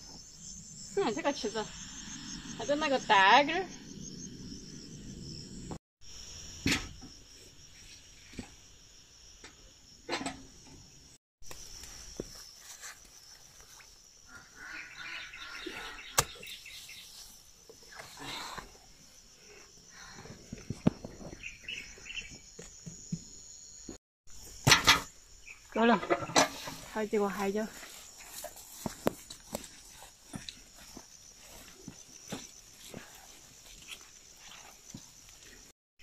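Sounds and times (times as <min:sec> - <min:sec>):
insects chirring: 0:00.0 - 0:35.7.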